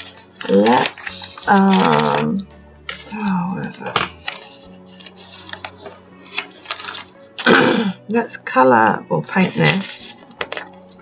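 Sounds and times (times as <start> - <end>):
journal pages turning: 0.0 - 7.8, 9.2 - 11.0
woman clearing her throat: 7.4 - 8.0.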